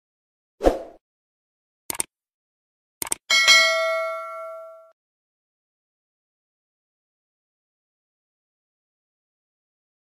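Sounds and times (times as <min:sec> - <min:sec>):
mouse clicks: 0:03.0 - 0:03.2
bright bell ding: 0:03.3 - 0:05.0.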